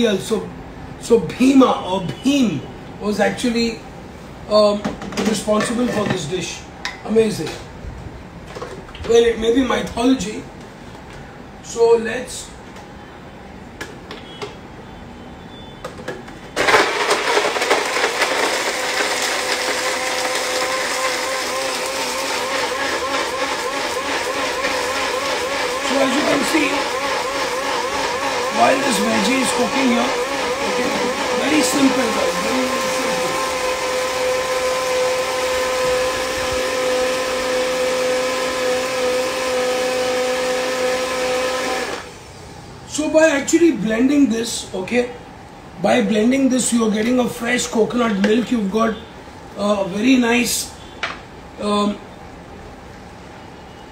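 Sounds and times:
electric blender grinding: 0:16.6 - 0:42.2.

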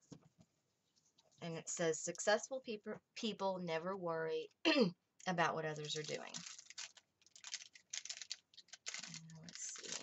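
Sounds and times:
paper crackling and clicking: 0:05.8 - 0:10.0.

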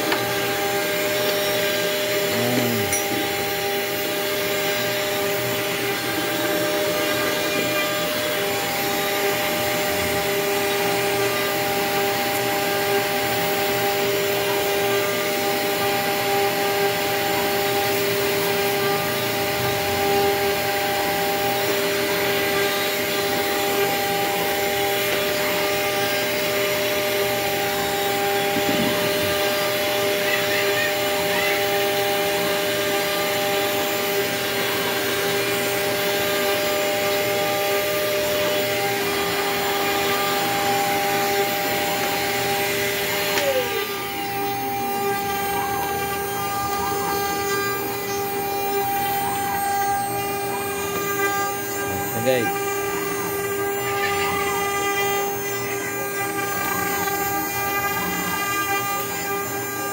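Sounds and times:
router spindle cutting wood: 0:00.0 - 0:59.9.

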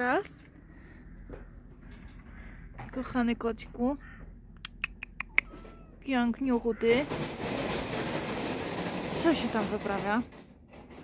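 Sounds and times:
people talking: 0:00.0 - 0:00.3, 0:02.9 - 0:04.0, 0:06.0 - 0:07.1, 0:09.1 - 0:10.3.

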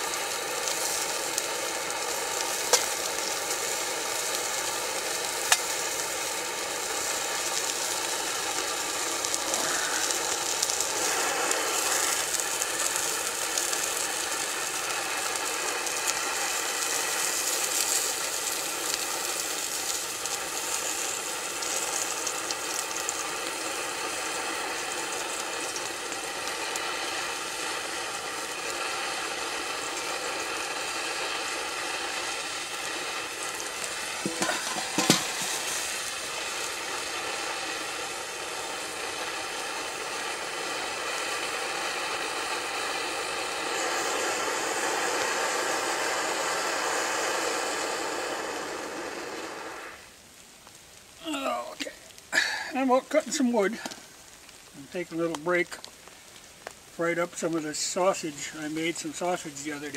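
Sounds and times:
sausage sizzling in a frying pan: 0:00.0 - 0:59.9.

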